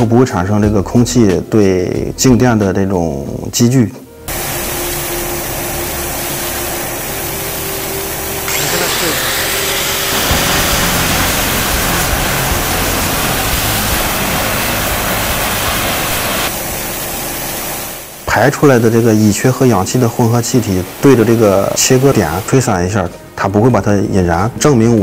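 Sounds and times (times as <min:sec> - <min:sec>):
louder brighter hiss: 0:04.2 - 0:22.8
water jet hissing against metal: 0:04.3 - 0:22.7.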